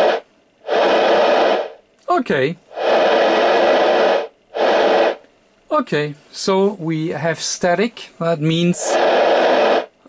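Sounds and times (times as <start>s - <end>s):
radio static hiss: 0.0s - 5.3s, 8.5s - 10.0s.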